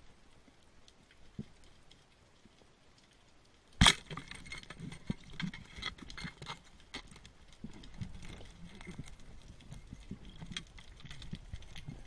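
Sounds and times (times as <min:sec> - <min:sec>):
underwater crackle of clicks: 0:00.0 - 0:12.0.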